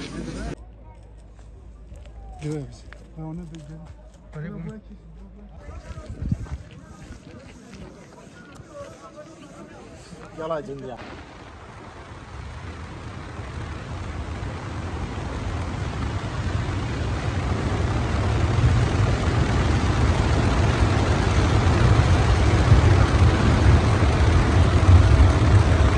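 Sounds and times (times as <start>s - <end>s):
vehicle rumbling through tunnel: 11.2s - 25.9s.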